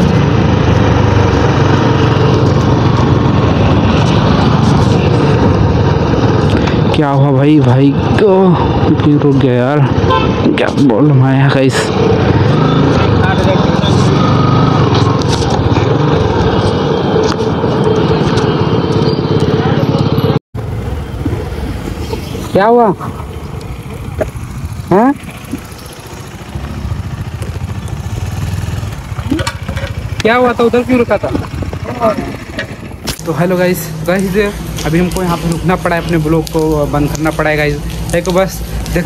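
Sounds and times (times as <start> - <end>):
motorcycle engine running: 0.0 - 39.0.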